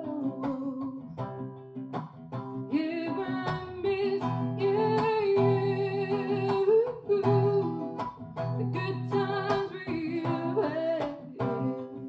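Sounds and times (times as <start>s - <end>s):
strummed acoustic guitar: 0.0s - 12.0s.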